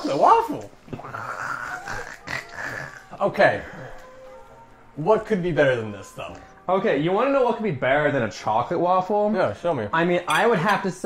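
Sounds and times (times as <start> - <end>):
man making throaty disgust noise: 0.9 - 3.2.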